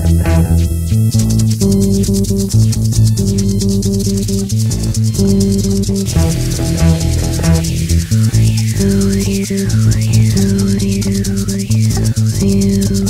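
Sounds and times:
bass guitar: 0.0 - 13.0
fast high ticking beat: 0.0 - 13.0
guitar playing sustained chords: 0.0 - 13.0.

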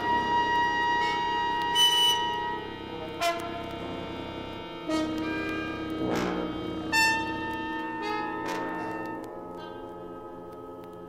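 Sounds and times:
wind and brass ensemble music: 0.0 - 10.9.

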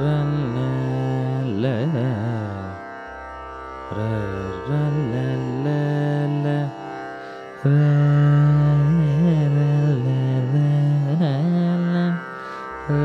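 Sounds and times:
man singing long ornamented notes: 0.0 - 3.0, 3.8 - 13.0.

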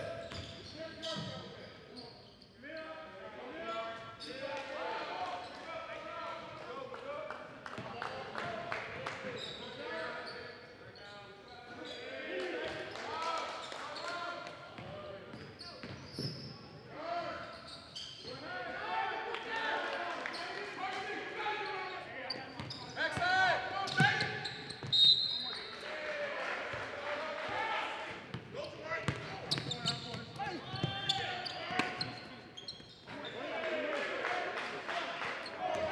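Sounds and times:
sneakers squeaking: 0.0 - 2.6, 9.4 - 12.1, 14.8 - 16.7, 17.3 - 18.4, 21.6 - 25.7, 28.3 - 33.5.

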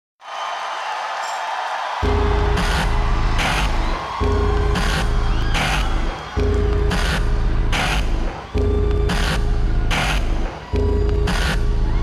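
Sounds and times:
crowd cheering: 0.2 - 12.0.

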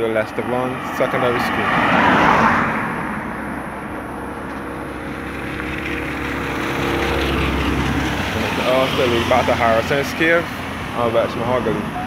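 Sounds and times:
car approaching: 0.0 - 12.0
car passing: 0.0 - 12.0.

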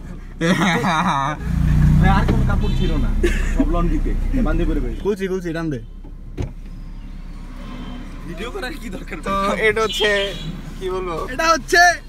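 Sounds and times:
vehicle engine humming: 0.0 - 12.0
man laughing: 0.3 - 1.6, 3.1 - 4.0.

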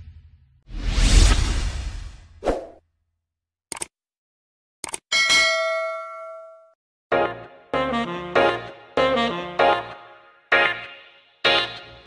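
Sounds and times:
notification bell ding: 5.2 - 6.8.

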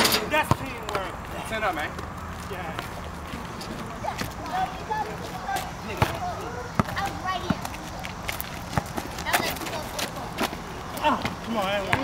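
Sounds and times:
players' voices: 0.0 - 12.0
basketball bouncing on asphalt: 0.4 - 1.1, 5.5 - 12.0.

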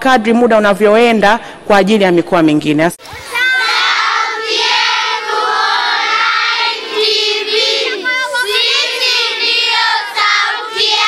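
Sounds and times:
children singing: 3.0 - 11.0.

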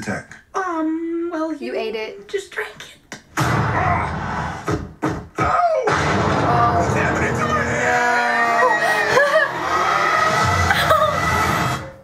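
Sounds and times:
trailer music and sound effects: 3.4 - 5.3, 5.9 - 8.3, 9.0 - 12.0.

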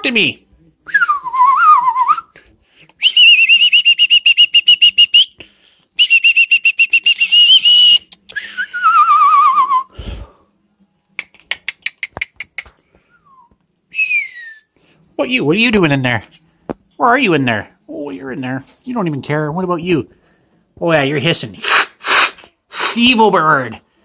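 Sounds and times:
parrot trilling and whistling: 13.1 - 14.7.

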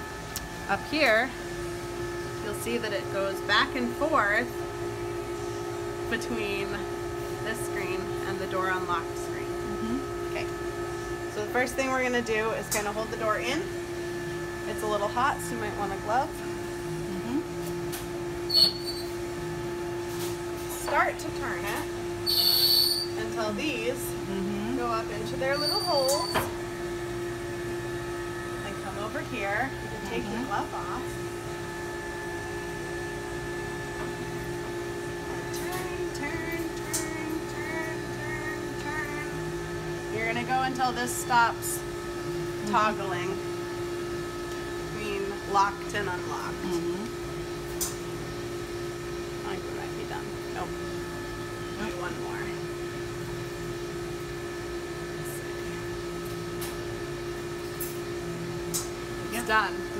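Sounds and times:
machine hum: 0.0 - 59.9.

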